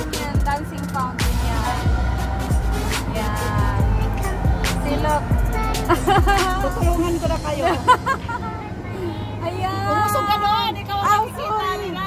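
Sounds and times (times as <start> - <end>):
music: 0.0 - 8.0
people chattering: 0.0 - 12.0.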